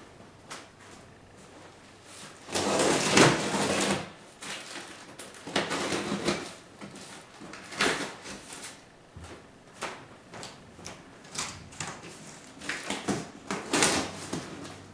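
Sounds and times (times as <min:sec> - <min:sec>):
packing tape tearing: 0:02.4 - 0:06.6, 0:07.5 - 0:08.8, 0:11.2 - 0:14.7.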